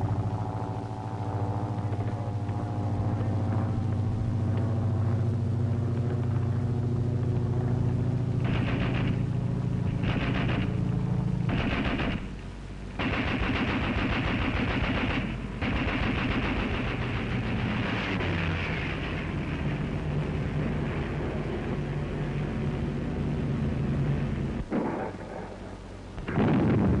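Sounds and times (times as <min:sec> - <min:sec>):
low engine drone: 0:00.0 - 0:27.0
machine-gun fire: 0:08.4 - 0:09.3, 0:09.9 - 0:10.8, 0:11.5 - 0:12.4, 0:13.0 - 0:18.2, 0:24.7 - 0:25.4.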